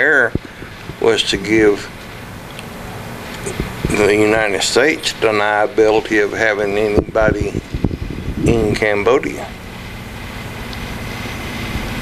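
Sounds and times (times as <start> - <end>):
even hiss: 0.0 - 12.0
low hum: 0.0 - 12.0.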